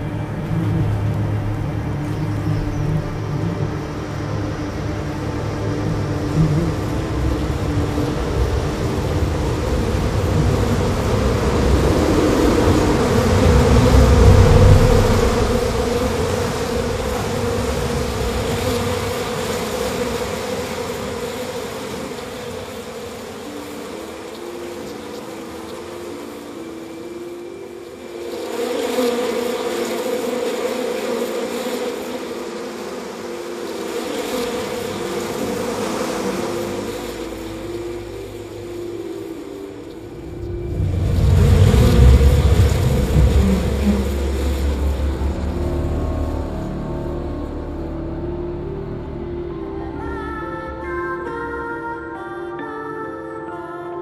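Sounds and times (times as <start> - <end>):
droning hum: 0.0 - 52.1
slow line of held notes: 0.0 - 54.0.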